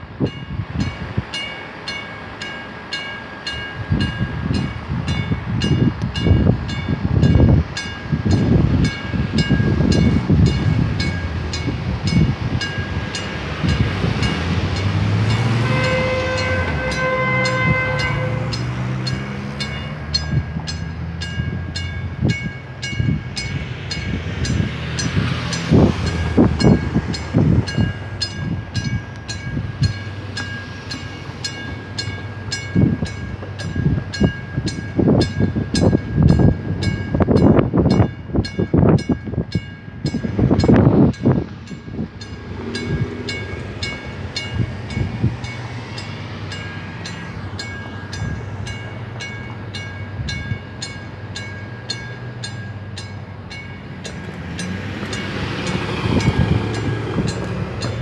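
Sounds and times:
wind buffeting microphone: 0.0s - 2.5s, 3.4s - 58.0s
horn: 15.4s - 18.7s.

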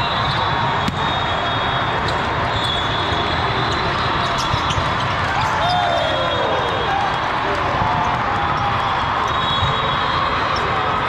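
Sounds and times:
volleyballs struck and bouncing: 0.8s - 1.2s, 4.2s - 5.6s.

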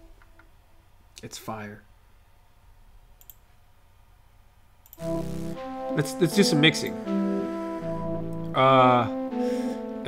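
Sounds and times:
synthesized flute melody: 5.0s - 10.0s.

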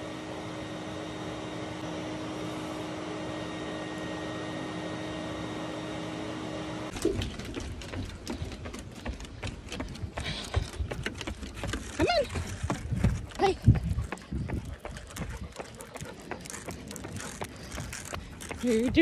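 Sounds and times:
dog trotting: 6.9s - 19.0s
running footsteps on pavement: 6.9s - 19.0s.

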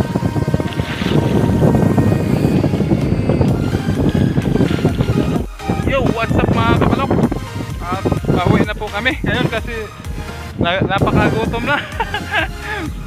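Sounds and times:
background music: 0.0s - 13.0s
wind buffeting microphone: 0.0s - 13.0s.

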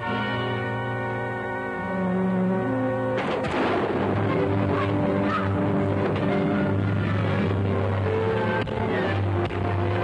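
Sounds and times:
orchestral music with strings and brass: 0.0s - 10.0s
loud crash: 3.2s - 4.6s.

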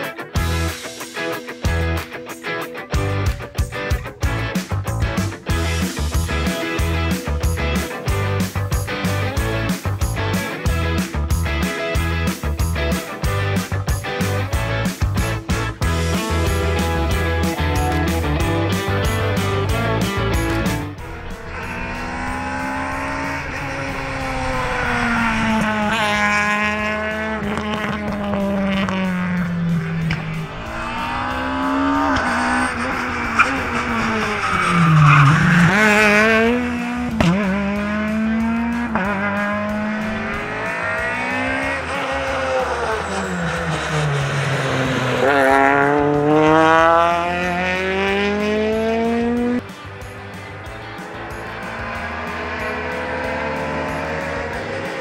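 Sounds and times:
rally car engine revving: 4.2s - 55.0s.

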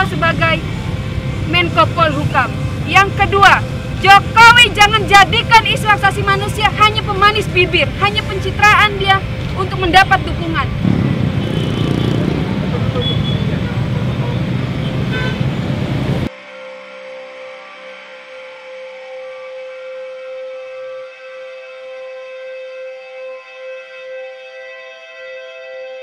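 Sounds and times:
voices: 0.0s - 0.7s, 1.5s - 10.8s, 12.5s - 14.9s
traffic: 0.0s - 16.3s
ambient music with held tones: 16.3s - 26.0s.

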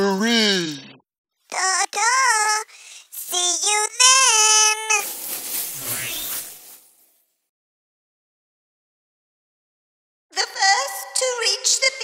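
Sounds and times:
cartoon whoosh: 4.9s - 6.9s.

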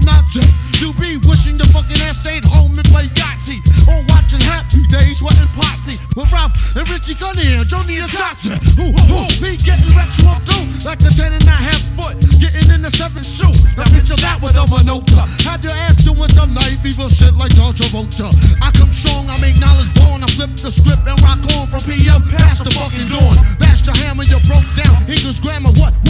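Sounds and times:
heavy repeating bass line: 0.0s - 26.0s
rapping over a beat: 0.0s - 26.0s.

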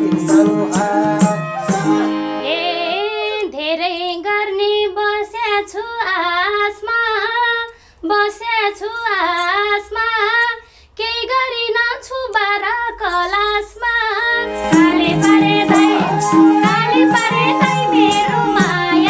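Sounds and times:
woman singing unaccompanied: 0.0s - 19.0s.

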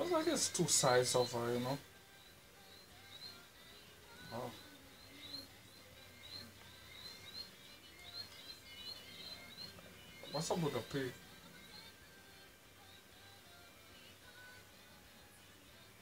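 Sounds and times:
faint high chirps: 0.0s - 12.4s.

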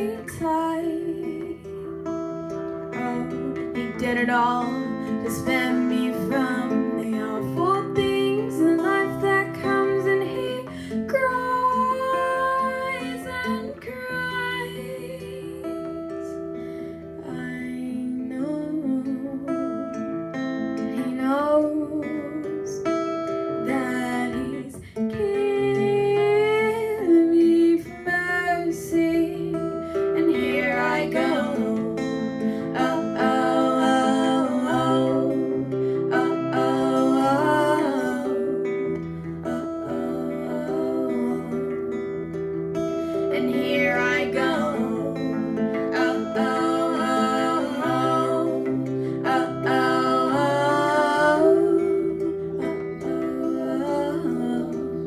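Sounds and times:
acoustic guitar: 0.0s - 55.0s
woman singing: 0.0s - 55.0s.

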